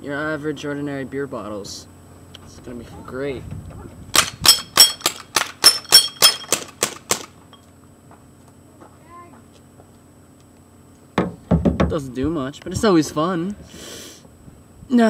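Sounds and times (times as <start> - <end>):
pellet pistol shots: 4.2 - 7.4.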